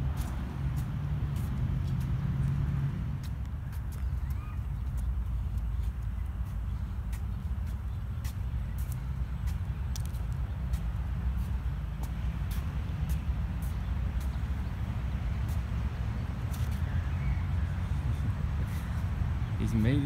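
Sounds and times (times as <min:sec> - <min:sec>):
footsteps on concrete: 0:00.0 - 0:16.9.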